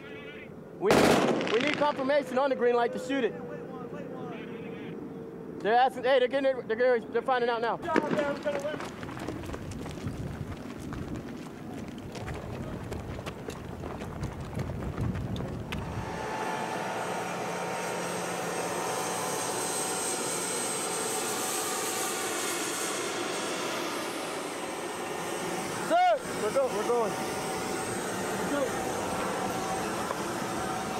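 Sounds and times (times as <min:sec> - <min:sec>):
high whine of turbine engine: 0:00.0 - 0:07.8, 0:15.0 - 0:30.9
low rumble with knocks and clicks: 0:08.0 - 0:15.9.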